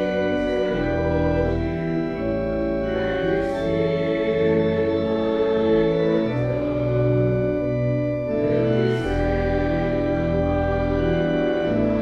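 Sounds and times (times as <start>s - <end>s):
church organ playing hymn chords: 0.0s - 12.0s.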